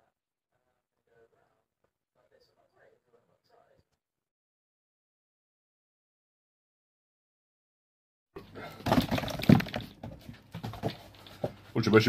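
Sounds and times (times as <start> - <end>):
cardboard box clattering: 8.8 - 11.5.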